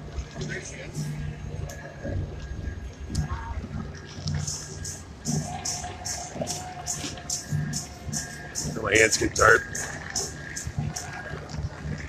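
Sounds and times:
crowd voices: 0.2 - 12.0
hissing percussion beat: 0.4 - 12.0.

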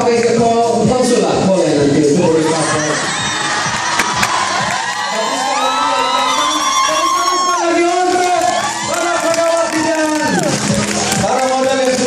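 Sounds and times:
audience cheering and shouting: 2.2 - 12.0.

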